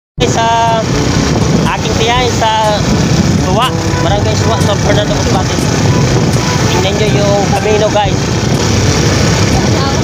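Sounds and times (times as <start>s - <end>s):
motorcycle engine rumble: 0.2s - 10.0s
wind noise on microphone: 0.2s - 10.0s
man calling out: 1.7s - 8.2s.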